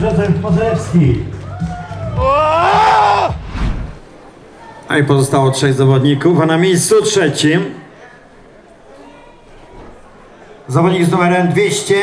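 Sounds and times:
background music: 0.0 - 4.0
man's drawn-out vocal shout: 2.2 - 3.4.

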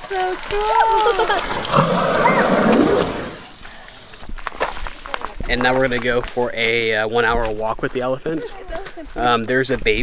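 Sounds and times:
elephant squirting water: 0.9 - 3.6.

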